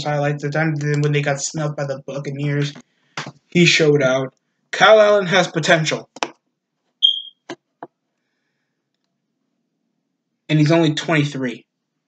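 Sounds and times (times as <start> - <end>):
high-pitched beep: 7.0 - 7.5.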